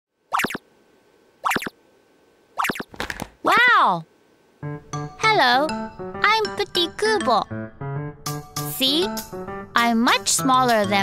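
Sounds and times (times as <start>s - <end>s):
cartoonish voice saying wow: 3.4s - 4.1s.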